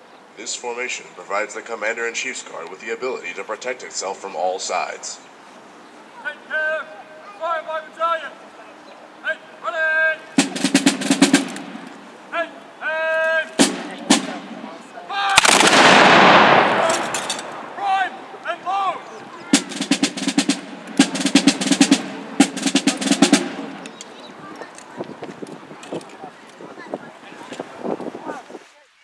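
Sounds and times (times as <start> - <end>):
commands shouted: 6.2 - 8.4, 9.2 - 10.6, 12.3 - 20.2
musket volley blast: 10.4 - 12.0, 13.6 - 23.9
drum rolls: 10.4 - 12.1, 13.5 - 24.0.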